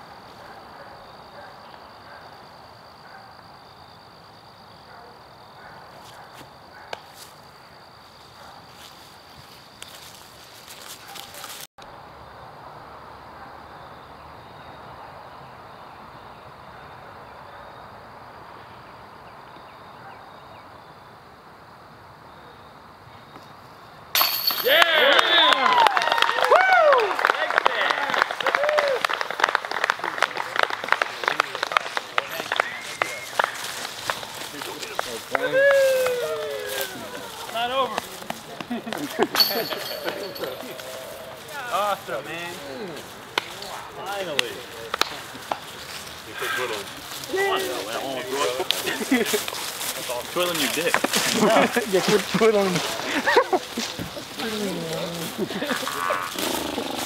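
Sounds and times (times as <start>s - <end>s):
faint insect-like tone: 0.1s - 24.0s
disc clattering into metal chains: 24.2s - 24.8s
crowd cheering and clapping: 24.6s - 41.3s.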